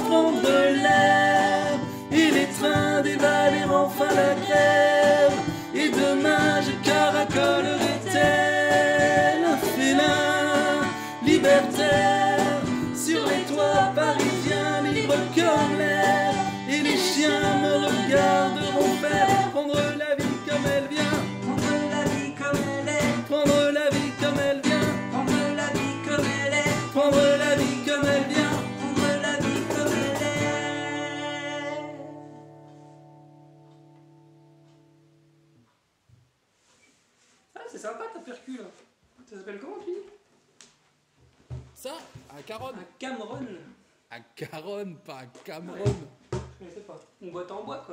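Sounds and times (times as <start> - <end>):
cajon beat: 0.0 - 31.3, 45.6 - 46.6
two men singing in harmony: 0.0 - 32.2
strummed acoustic guitar: 0.0 - 35.2.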